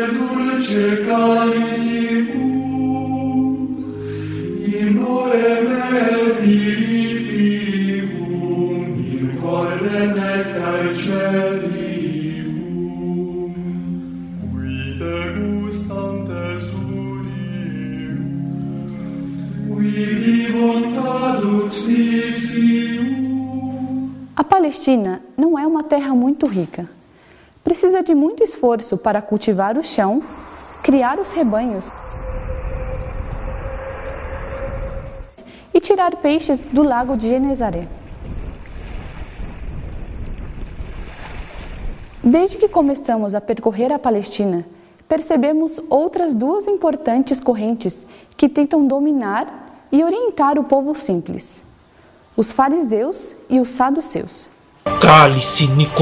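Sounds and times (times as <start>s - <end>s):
choir chanting long notes: 0.0s - 24.3s, 29.9s - 35.6s, 54.8s - 56.0s
steady rumble and hiss: 26.9s - 38.4s, 42.2s - 56.0s.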